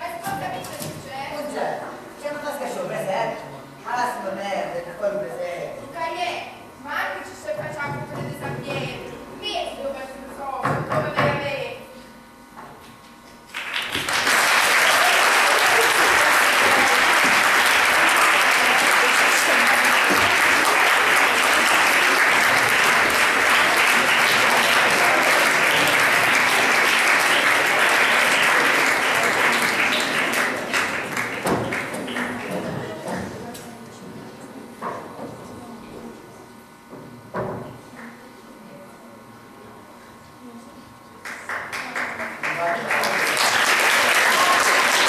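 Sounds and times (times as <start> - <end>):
audience applauding: 13.5 - 32.9, 41.2 - 45.0.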